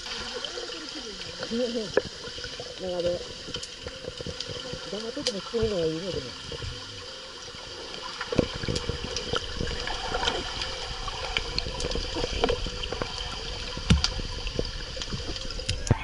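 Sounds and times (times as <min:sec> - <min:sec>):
underwater gurgling and bubbling: 0:00.0 - 0:16.0.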